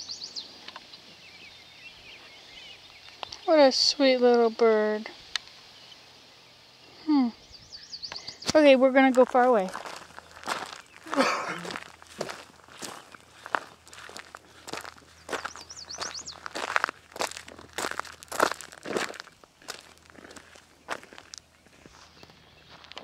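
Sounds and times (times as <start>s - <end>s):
footsteps crunching on gravel: 8.5s - 23.0s.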